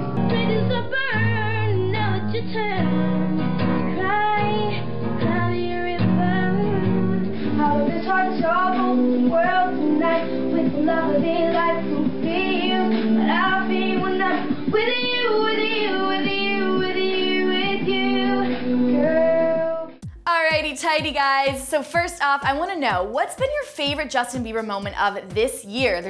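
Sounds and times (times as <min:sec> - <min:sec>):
boy singing: 0:00.2 - 0:03.1, 0:03.9 - 0:21.1.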